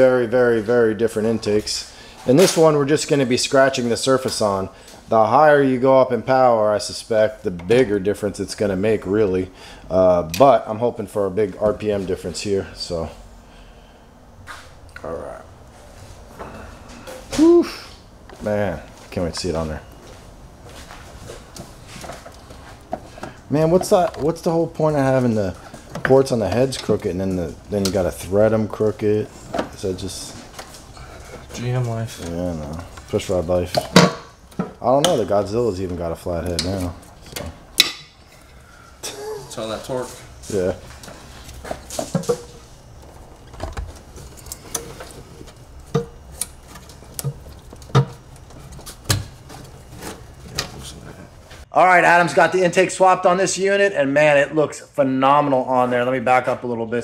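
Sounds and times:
shuffling: 15.5 - 26.0.

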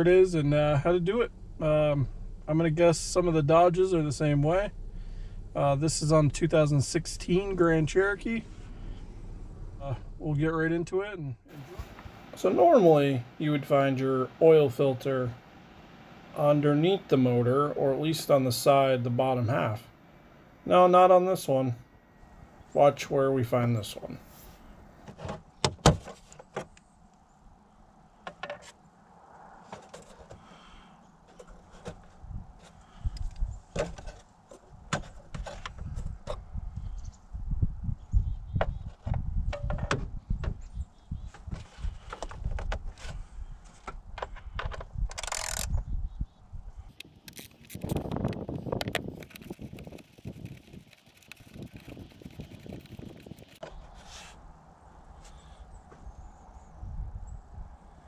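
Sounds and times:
low rumble: 0.0 - 11.6
scraping handling noise: 29.7 - 30.4, 31.2 - 36.5
hands clicking and rattling plastic: 47.0 - 53.6.

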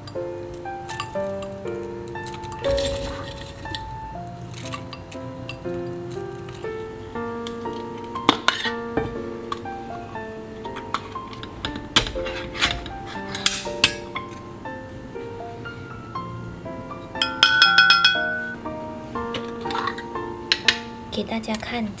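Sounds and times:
lo-fi background music: 0.0 - 22.0.

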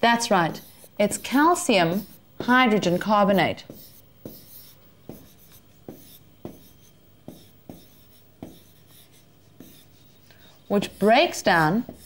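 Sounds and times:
pen strokes on board: 0.3 - 12.0.

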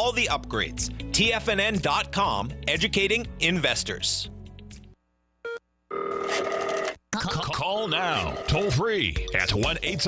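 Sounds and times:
telephone ringing: 5.5 - 7.0, 7.8 - 8.8.

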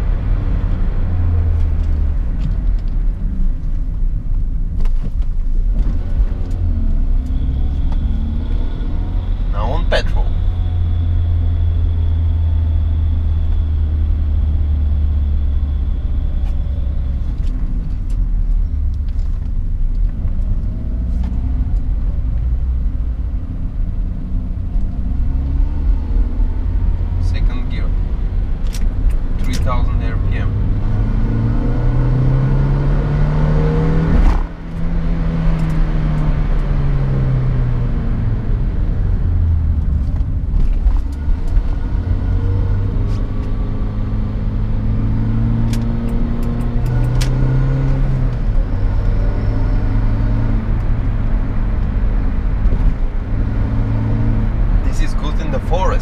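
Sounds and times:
car engine from inside cabin: 0.0 - 56.0.

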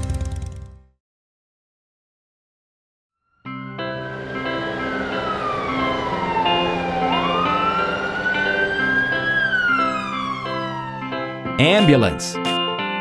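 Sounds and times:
cheerful background music: 3.8 - 13.0
cartoon ambulance siren wailing: 4.1 - 11.5.

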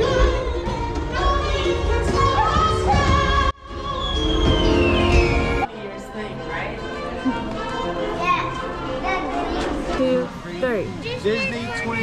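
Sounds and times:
background music: 0.0 - 11.8
children's excited chatter: 7.0 - 12.0.

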